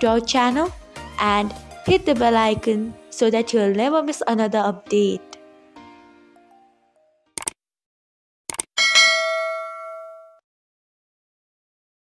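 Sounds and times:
bell ding: 0:08.8 - 0:10.4.

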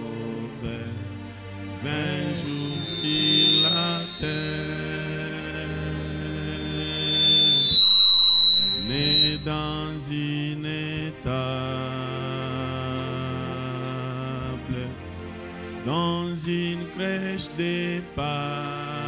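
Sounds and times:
microphone feedback whistle: 0:01.8 - 0:09.8.

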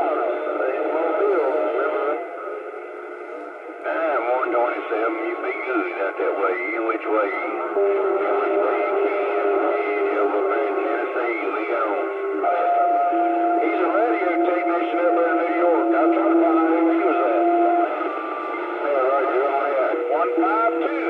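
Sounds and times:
garbled radio voices: 0:00.0 - 0:21.0.

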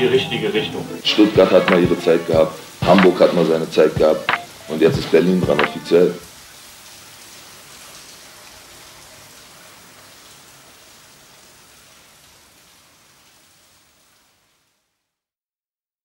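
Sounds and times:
rain hissing: 0:00.0 - 0:14.8.

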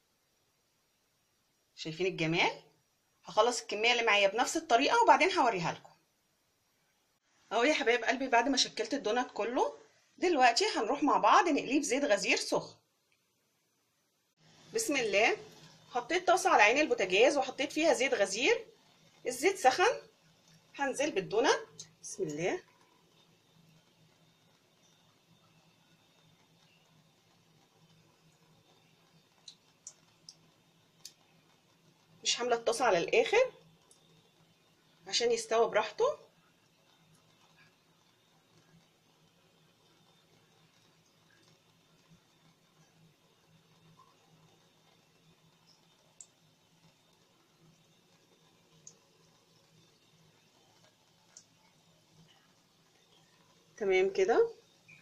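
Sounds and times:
dough popping in frying oil: 0:00.0 - 0:55.0
faint steady low hum: 0:00.0 - 0:55.0
woman speaking: 0:01.8 - 0:02.6, 0:03.3 - 0:05.8, 0:07.5 - 0:12.8, 0:14.8 - 0:15.4, 0:16.0 - 0:18.6, 0:19.3 - 0:20.0, 0:20.8 - 0:22.6, 0:32.3 - 0:33.6, 0:35.1 - 0:36.3, 0:53.8 - 0:54.6.

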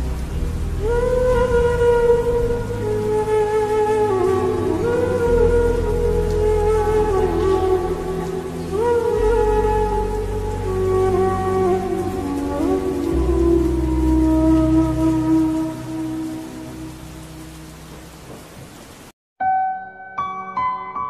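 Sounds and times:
slow reverb-heavy lo-fi music: 0:00.0 - 0:18.2
piano notes: 0:00.0 - 0:18.7, 0:19.4 - 0:21.0
rain: 0:00.0 - 0:19.2.

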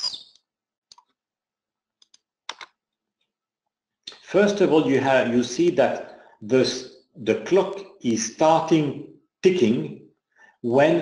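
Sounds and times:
person speaking: 0:04.1 - 0:10.0, 0:10.6 - 0:11.0.

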